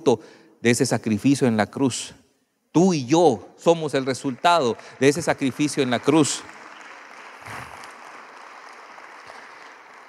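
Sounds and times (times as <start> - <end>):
faint applause: 4.1 - 10.0.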